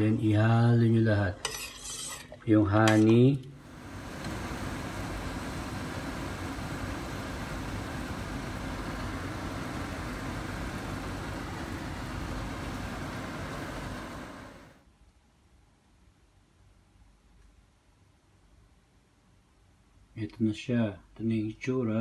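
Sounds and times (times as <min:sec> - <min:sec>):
water boiling in a pot: 0:03.6 - 0:14.8.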